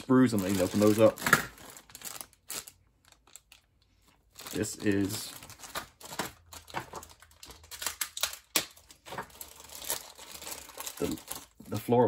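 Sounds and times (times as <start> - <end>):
plastic bag crinkling: 0.0 - 12.0.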